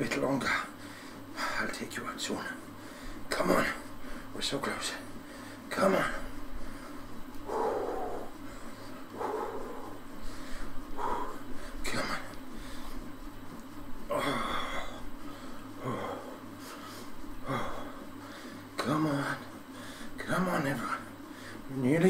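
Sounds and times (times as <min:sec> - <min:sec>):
steady low hum: 0:00.0 - 0:22.0
man breathing hard: 0:00.8 - 0:01.6, 0:02.8 - 0:03.3, 0:03.9 - 0:04.4, 0:05.1 - 0:11.8, 0:12.4 - 0:13.1, 0:14.0 - 0:18.8, 0:19.7 - 0:20.2, 0:21.0 - 0:21.7.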